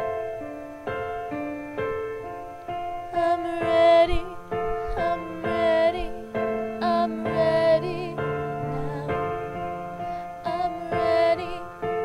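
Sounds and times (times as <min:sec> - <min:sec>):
piano chords: 0:00.0 - 0:12.0
woman singing with vibrato: 0:03.1 - 0:09.6, 0:10.4 - 0:11.9.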